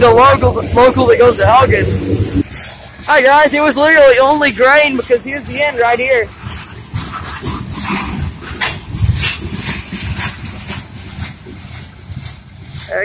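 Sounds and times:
freight train rumble: 0.0s - 13.0s
wheels squealing on rails: 0.0s - 13.0s.

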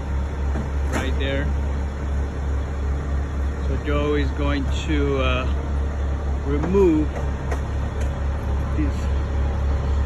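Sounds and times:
engine running low rumble: 0.0s - 10.0s
man speaking: 8.6s - 9.2s.

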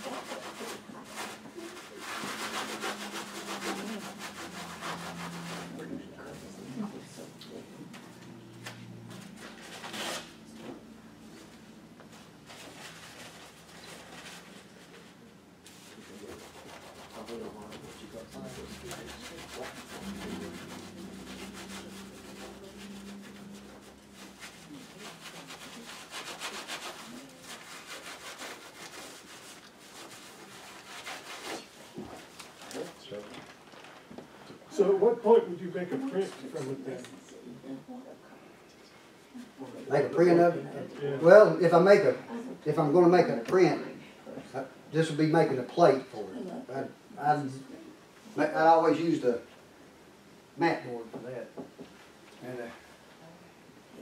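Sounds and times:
drawing tool scratching board: 0.0s - 5.9s, 15.7s - 32.6s.

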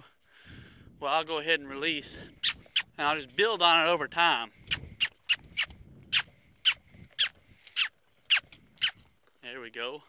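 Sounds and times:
sharp kissing squeaks: 2.4s - 2.9s, 4.7s - 9.0s.

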